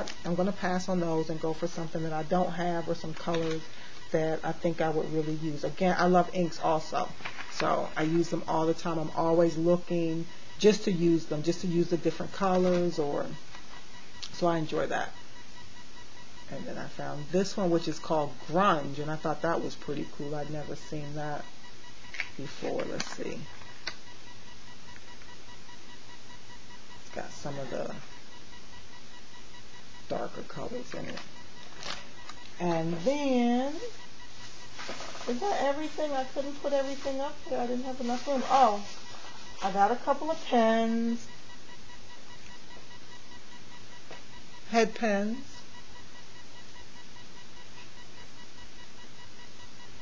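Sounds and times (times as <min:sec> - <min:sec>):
background hiss: 0:00.0 - 0:50.0
faint high-pitched electrical whine: 0:00.0 - 0:50.0
rapidly pulsing high tone: 0:00.0 - 0:50.0
steady hiss: 0:29.6 - 0:41.3.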